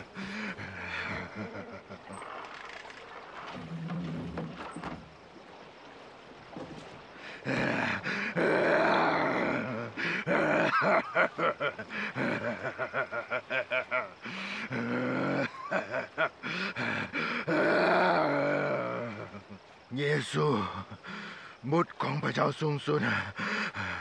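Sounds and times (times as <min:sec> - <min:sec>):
man screaming and groaning: 0:07.5 - 0:10.9, 0:17.4 - 0:19.1.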